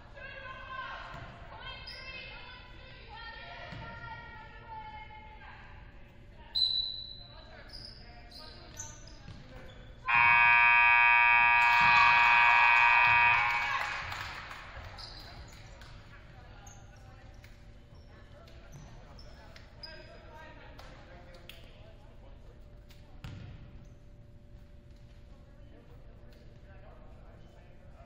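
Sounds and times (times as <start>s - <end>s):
scoreboard horn blast: 10.1s - 14.5s.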